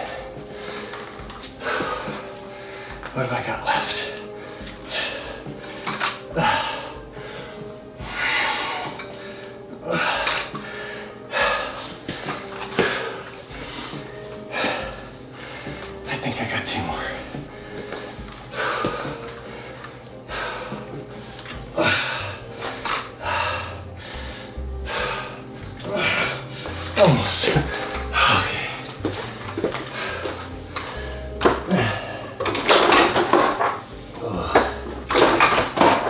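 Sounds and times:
man breathing heavily: 0.0s - 16.2s, 16.8s - 36.0s
background music: 0.0s - 36.0s.

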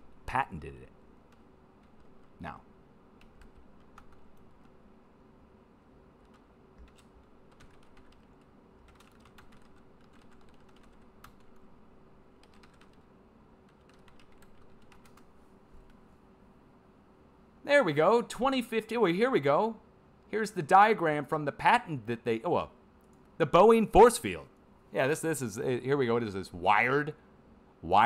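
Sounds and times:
faint keyboard typing: 1.2s - 2.6s, 3.2s - 4.9s, 6.1s - 16.2s.

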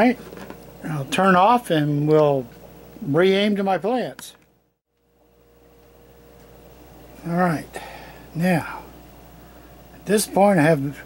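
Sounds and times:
thin high hum: 0.0s - 11.0s.

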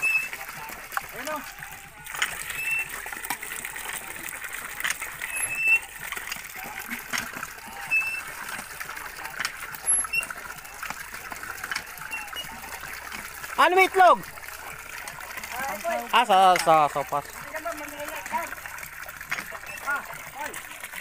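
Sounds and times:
water running into plastic bucket: 0.0s - 21.0s
water splashing and sloshing: 0.0s - 21.0s.

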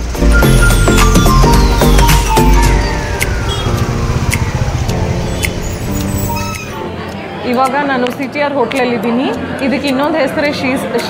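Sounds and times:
road traffic rumble: 0.0s - 8.9s
short sharp ticks: 3.2s - 6.8s.

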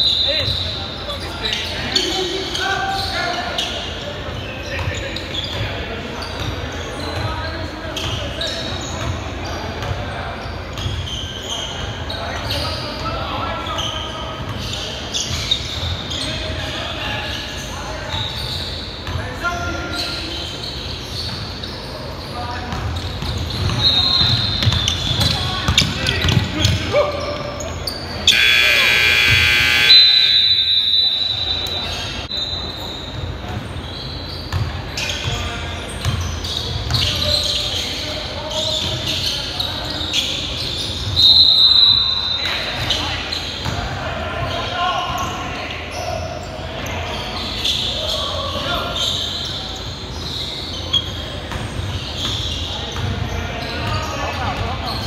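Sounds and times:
players' voices echoing: 22.0s - 32.3s
loud harsh buzzer tone: 28.3s - 31.1s.

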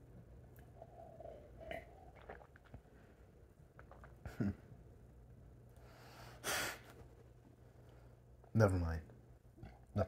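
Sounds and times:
person swallowing: 0.8s - 2.9s.

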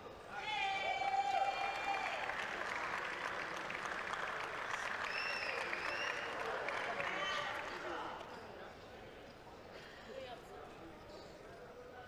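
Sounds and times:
high call over applause: 0.4s - 8.0s
audience clapping: 1.2s - 7.9s.

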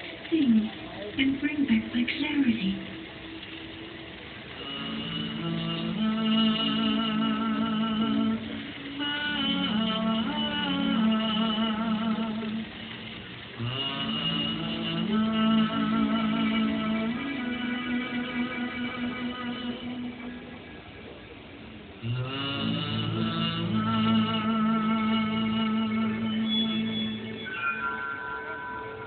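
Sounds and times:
woman singing with vibrato: 4.6s - 12.9s, 13.6s - 20.6s
instrumental accompaniment: 22.4s - 29.0s.

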